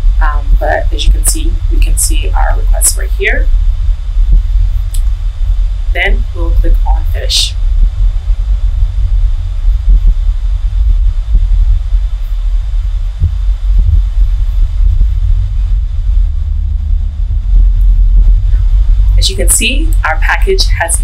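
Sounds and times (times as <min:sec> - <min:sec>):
low background rumble: 0:00.0 - 0:21.0.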